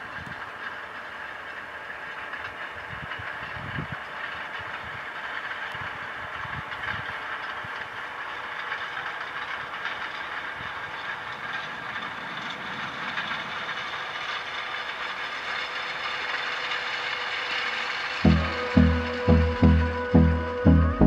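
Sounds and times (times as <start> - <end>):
tractor diesel engine: 0.0 - 21.0
seed drill running: 0.1 - 21.0.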